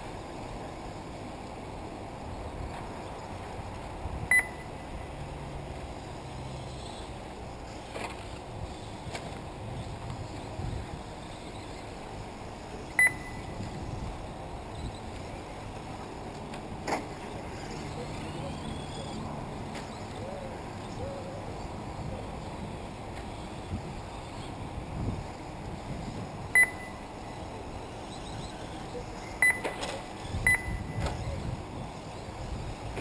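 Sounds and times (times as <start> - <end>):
low background noise: 0.0 - 33.0
low outdoor rumble: 0.0 - 33.0
high electronic beep: 4.3 - 4.8, 13.0 - 13.6, 26.6 - 27.1, 29.4 - 29.8, 30.4 - 31.1.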